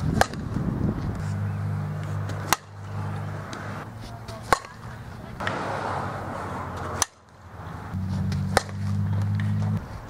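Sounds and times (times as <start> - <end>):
steady low hum: 0.0 - 5.4, 6.0 - 10.0
bat striking ball: 0.1 - 0.6, 1.6 - 5.7, 6.7 - 7.3, 8.0 - 9.8.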